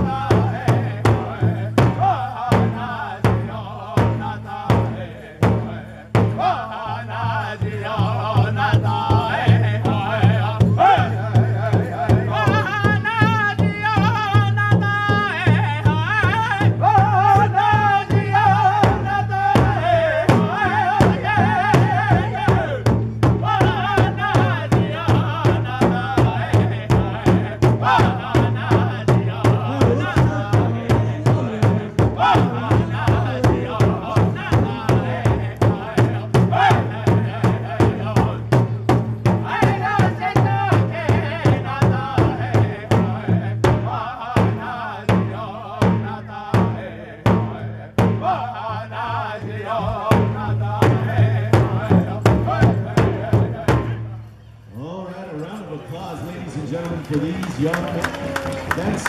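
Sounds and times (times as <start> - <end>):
large hand drum beat: 0.0 - 54.1
men singing loudly: 0.0 - 54.2.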